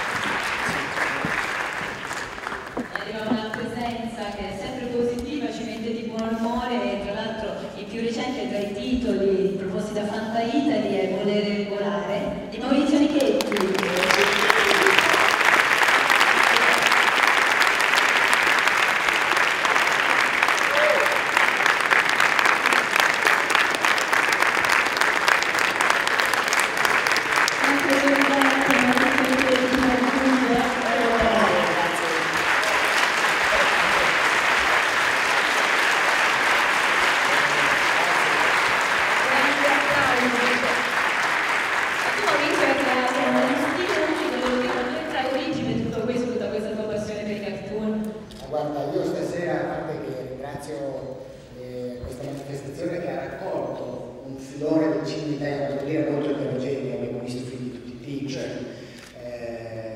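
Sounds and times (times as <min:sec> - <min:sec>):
audience applauding: 0:00.0 - 0:03.9, 0:13.2 - 0:45.6.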